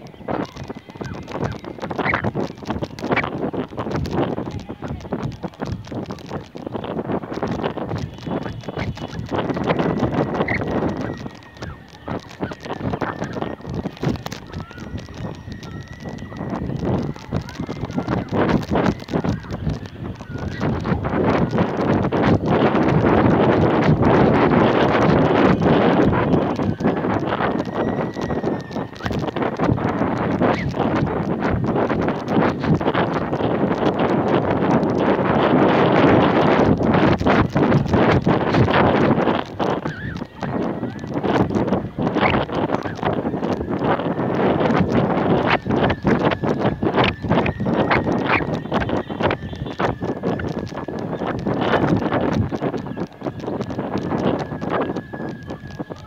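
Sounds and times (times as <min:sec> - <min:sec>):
wind buffeting microphone: 0:00.0 - 0:56.0.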